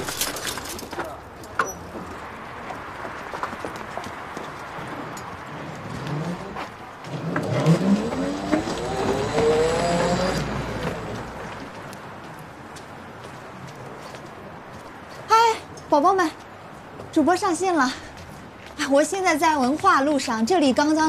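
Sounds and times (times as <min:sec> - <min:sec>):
electric scooter motor rising: 0:05.8 - 0:11.6.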